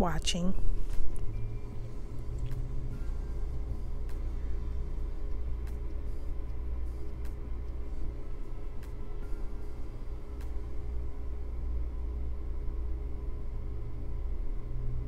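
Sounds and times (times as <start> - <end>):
soft music with bass line: 0.0 - 15.0.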